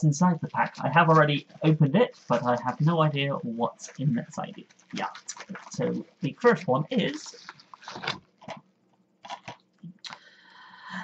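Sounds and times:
plastic case rustling: 0.6s - 9.8s.

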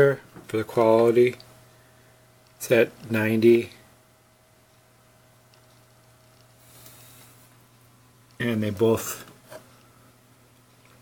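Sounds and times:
low electrical hum: 0.0s - 11.0s
soft rustling hiss: 0.0s - 11.0s.

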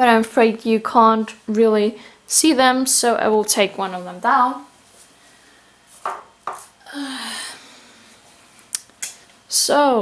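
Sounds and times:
ceramic knocks on wooden shelf: 6.0s - 6.6s.

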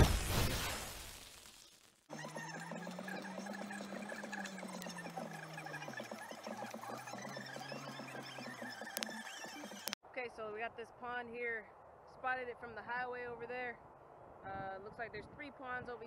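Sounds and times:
car engine running: 2.1s - 10.0s
intro sound effect: 2.1s - 10.0s.

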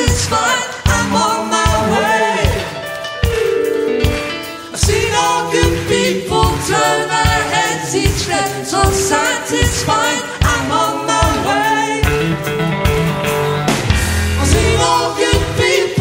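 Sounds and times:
voices singing in harmony: 0.0s - 2.9s, 4.7s - 12.3s, 14.3s - 16.0s
bass: 0.0s - 16.0s
drums: 0.0s - 16.0s.

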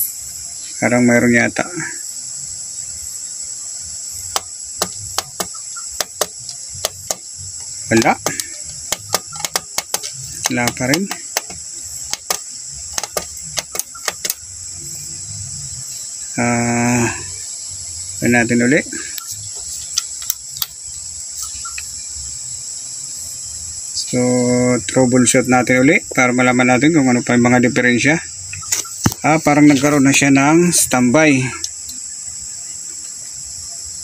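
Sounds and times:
high-pitched insect chorus: 0.0s - 34.0s
plastic button clicks: 8.0s - 12.4s.

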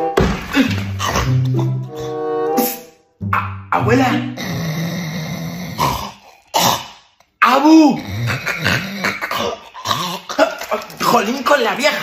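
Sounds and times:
person snoring: 4.2s - 6.9s, 7.9s - 10.3s.

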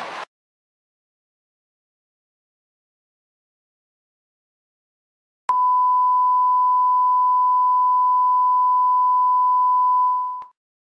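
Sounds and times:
pure test tone beep: 5.5s - 10.5s.

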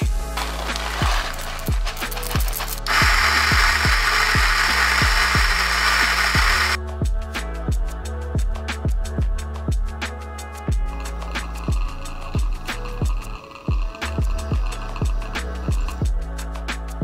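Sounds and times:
coffee grinder grinding beans: 0.0s - 6.8s, 10.9s - 16.1s
background music with steady beat: 0.0s - 17.0s.

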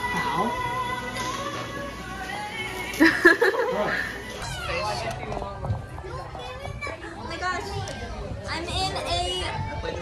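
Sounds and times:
young voices talking and calling out: 4.0s - 10.0s.

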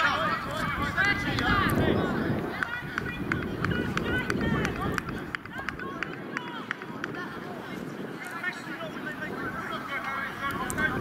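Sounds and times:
distant voices of players: 0.0s - 11.0s
wind rumbling on microphone: 0.0s - 11.0s.

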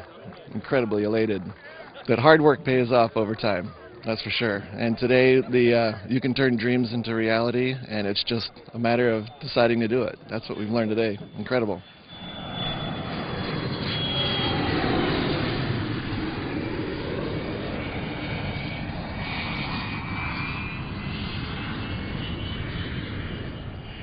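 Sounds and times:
jet engine rush and whine: 0.0s - 24.0s.

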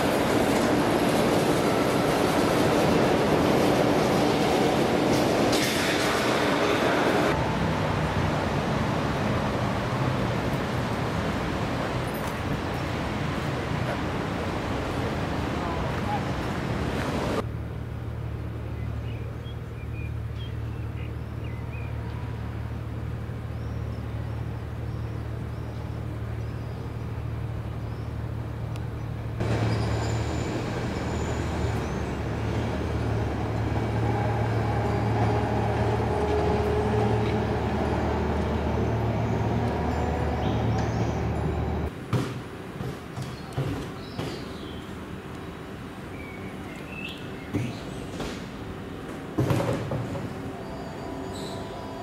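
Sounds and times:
road traffic rumble: 0.0s - 52.0s
whining tones from vehicles: 21.3s - 41.9s.

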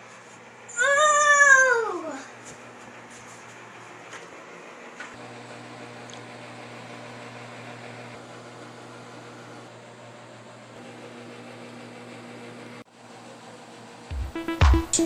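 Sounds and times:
electric fan humming: 0.0s - 15.0s.

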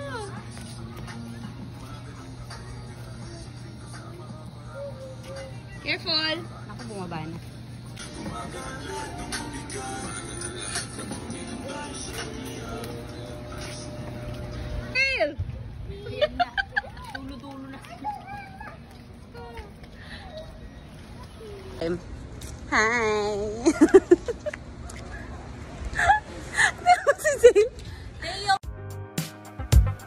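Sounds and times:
outdoor background noise: 0.0s - 28.6s.

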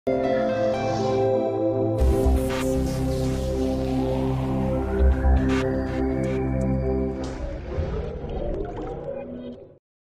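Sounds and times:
electronic intro music: 0.1s - 9.8s.

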